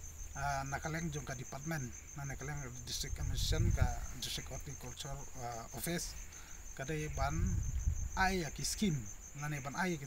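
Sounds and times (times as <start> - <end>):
pulsing insect trill: 0.0 - 10.0
man talking: 0.4 - 6.2, 6.8 - 7.6, 8.2 - 10.0
low rumble on microphone: 3.0 - 4.2, 7.1 - 8.4.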